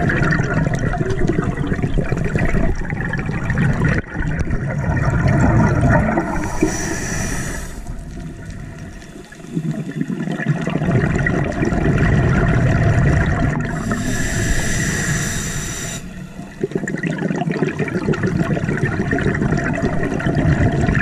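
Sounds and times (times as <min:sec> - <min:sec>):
bubbling exhale underwater: 0:00.0 - 0:21.0
hissing regulator inhale: 0:06.2 - 0:08.2, 0:08.8 - 0:10.0, 0:13.7 - 0:16.9.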